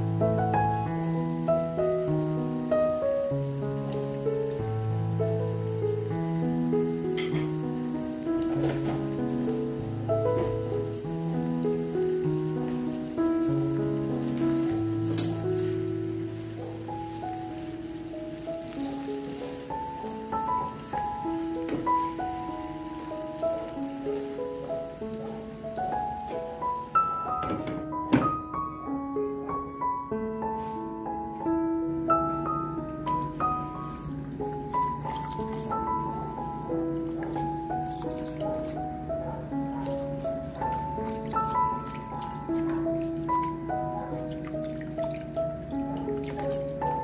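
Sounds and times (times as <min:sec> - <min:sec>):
slow piano music: 0:00.0 - 0:47.0
steady rain-like hiss: 0:00.0 - 0:47.0.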